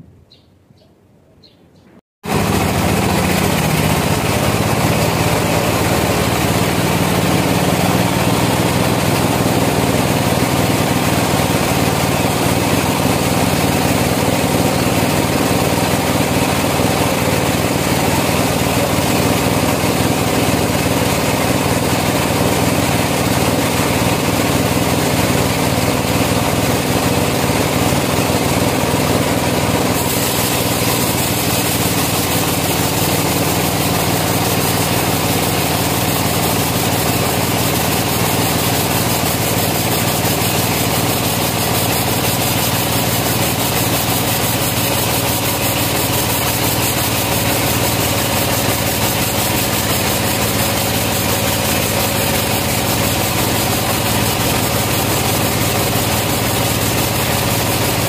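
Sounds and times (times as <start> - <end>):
bandsaw mill humming: 2.2 - 58.0.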